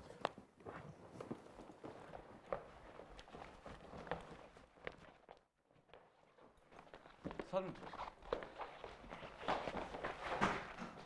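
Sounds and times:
hurried footsteps on wooden floor: 0.6 - 11.0.

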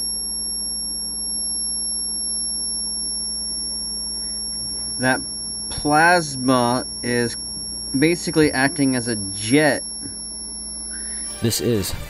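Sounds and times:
high-pitched electrical whine: 0.0 - 12.0
low hum: 0.0 - 12.0.

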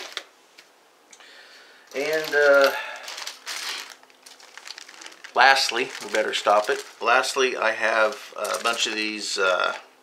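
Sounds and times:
plastic bag crinkling: 1.9 - 9.3.

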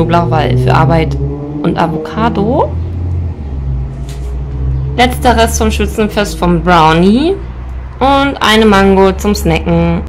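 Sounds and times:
steady low rumble: 0.0 - 9.1.

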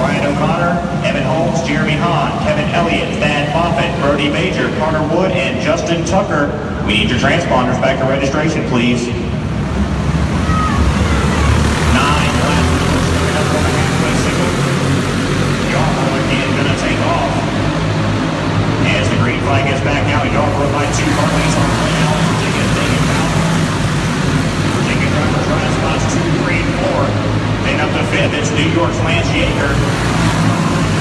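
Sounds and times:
people talking: 0.0 - 9.3, 10.4 - 15.0, 15.6 - 17.6, 18.8 - 23.7, 24.7 - 31.0
kart engines droning: 0.0 - 31.0.

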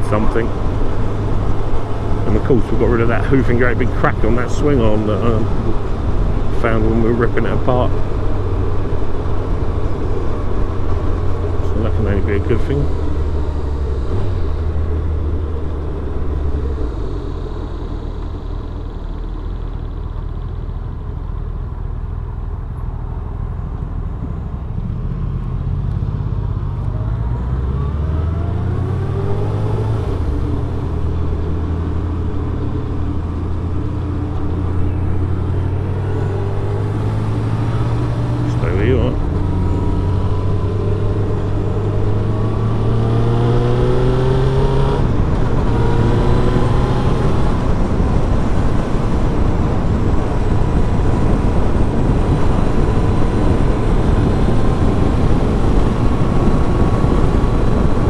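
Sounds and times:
motorcycle engine accelerating: 0.0 - 58.0
wind rush: 27.0 - 58.0.

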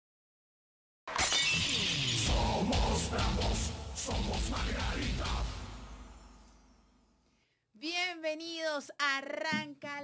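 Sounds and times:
shattering glass crash: 1.1 - 2.2
intro music: 1.7 - 6.9
heavy low beat: 2.5 - 5.6.

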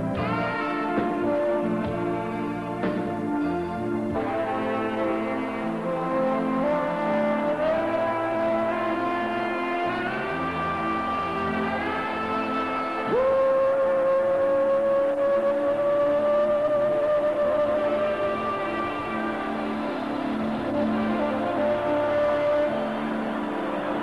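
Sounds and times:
live band playing pop ballad: 0.0 - 24.0
sustained instrumental lead melody: 0.0 - 24.0.

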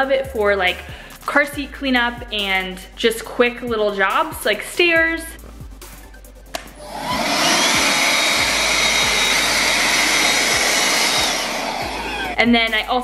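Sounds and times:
hand vacuum motor whining: 6.8 - 12.4.

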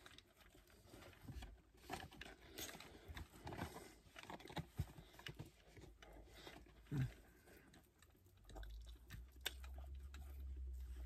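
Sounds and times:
person chewing food: 4.2 - 11.0
low steady rumble: 8.4 - 11.0.

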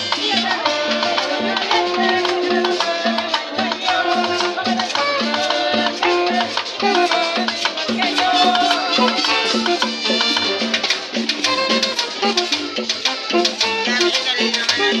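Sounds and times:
alto saxophone: 0.0 - 15.0
conga drum: 0.0 - 15.0
snare drum: 0.0 - 15.0
upright bass walking line: 0.0 - 15.0
metal scraper rhythm: 0.2 - 15.0
button accordion: 0.4 - 15.0.

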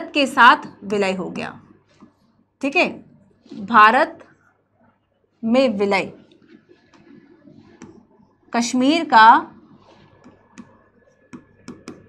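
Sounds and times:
stylus clicking on tablet screen: 6.3 - 8.4, 9.6 - 12.0.

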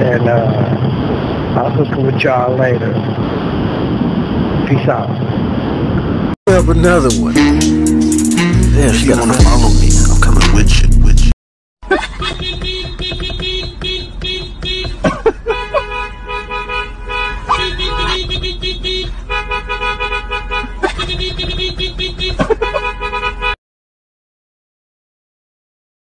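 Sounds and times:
car horns honking: 12.1 - 23.6.

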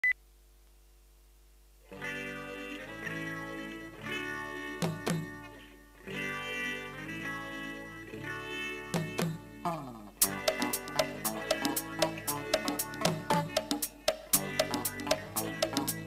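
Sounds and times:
electric guitar chords: 1.9 - 16.0
bass guitar: 2.0 - 16.0.

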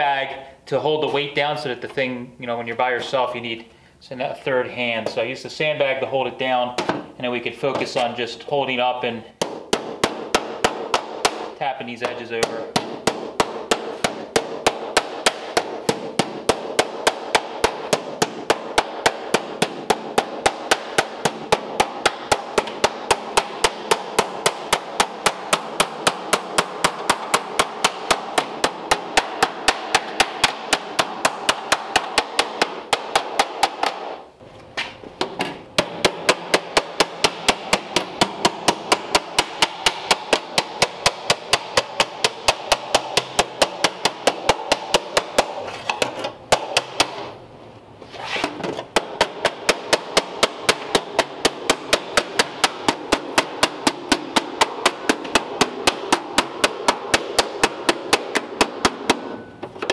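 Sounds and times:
hammer tapping on metal: 9.4 - 34.2, 35.2 - 47.3.

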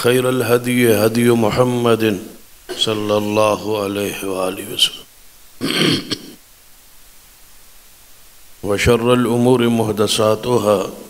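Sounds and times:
man clearing his throat: 5.6 - 6.4.

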